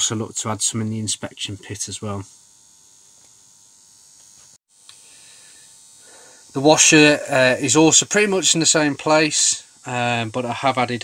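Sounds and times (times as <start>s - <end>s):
room tone hiss: 4.2s - 11.0s.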